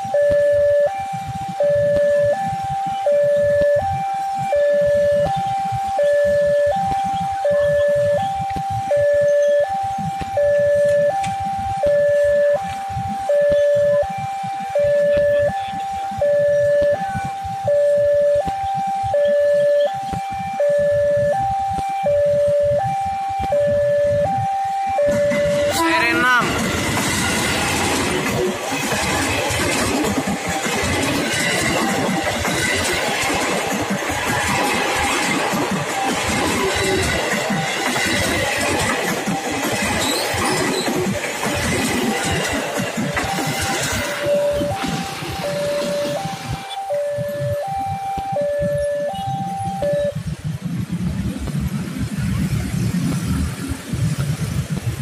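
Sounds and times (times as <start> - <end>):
crossing alarm two-tone: 0.0 - 51.7
motorcycle engines: 0.0 - 55.0
train wheels clattering over rails: 25.0 - 47.6.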